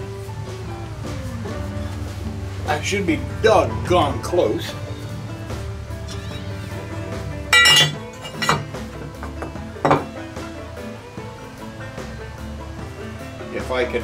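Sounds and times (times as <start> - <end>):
background music: 0.0 - 14.0
metal square clinking on wood: 7.5 - 8.7.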